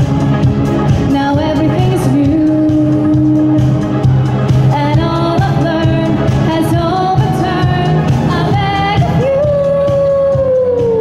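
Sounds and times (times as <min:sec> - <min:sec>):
pop band playing live: 0:00.0 - 0:11.0.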